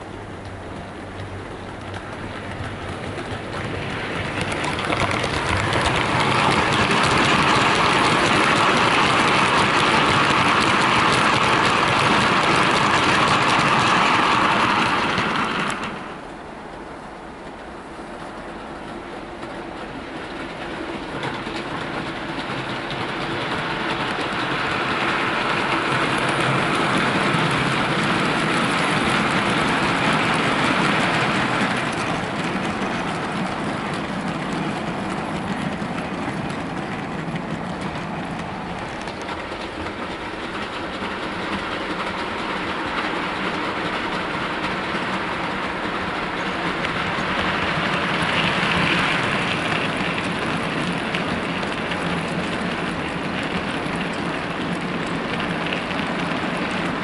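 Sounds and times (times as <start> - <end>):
model train wagons rolling on track: 0.0 - 57.0.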